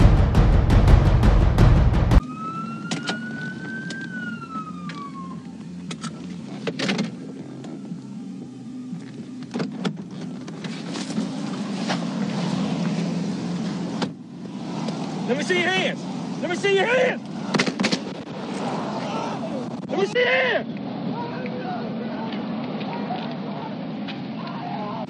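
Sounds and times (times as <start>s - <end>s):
police siren wailing: 2.2s - 6.6s, 7.2s - 9.6s
idling car engine hum: 3.2s - 17.5s.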